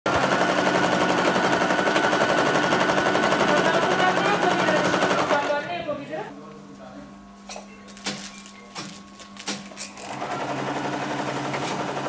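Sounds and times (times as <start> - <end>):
sewing machine running: 0.1 - 5.7, 9.5 - 12.0.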